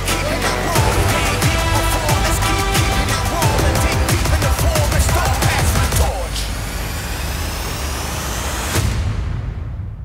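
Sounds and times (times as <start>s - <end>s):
hissing riser with rising tones: 5.7s - 9.0s.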